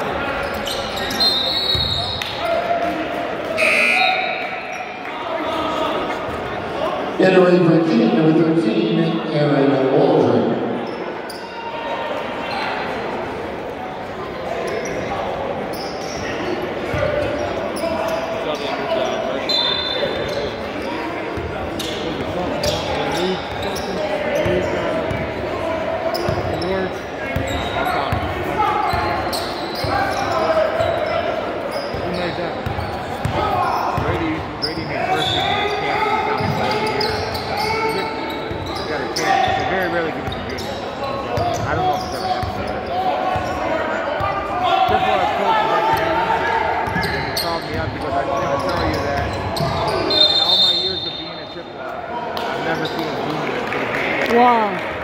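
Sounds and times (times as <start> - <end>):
voices calling out echoing: 0.0 - 13.5, 14.2 - 55.0.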